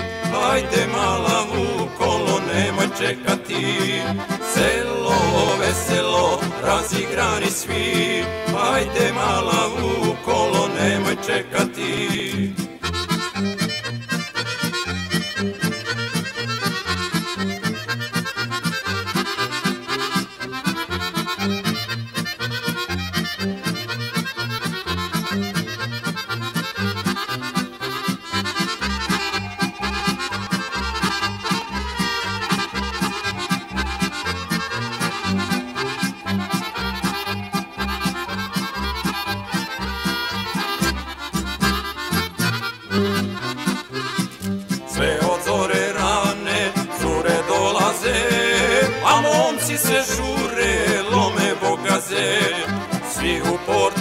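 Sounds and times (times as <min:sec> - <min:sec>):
accordion melody: 0:00.0 - 0:54.0
band accompaniment: 0:00.0 - 0:54.0.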